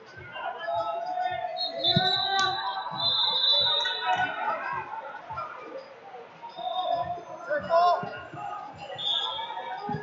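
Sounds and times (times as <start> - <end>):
voices shouting in a large hall: 0.0 - 10.0.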